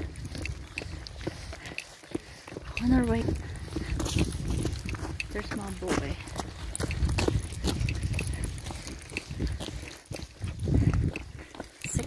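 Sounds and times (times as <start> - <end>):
footsteps on asphalt: 0.0 - 12.0
wind rumble on microphone: 0.0 - 12.0
person speaking: 2.7 - 3.5, 5.2 - 6.4.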